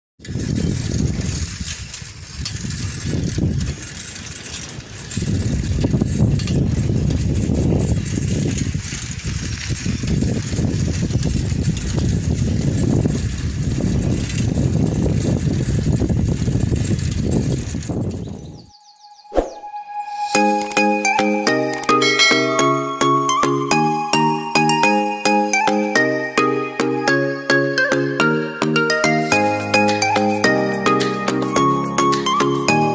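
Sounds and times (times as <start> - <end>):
wind buffeting microphone: 0.2 - 18.8
chime note: 19.6 - 24.3.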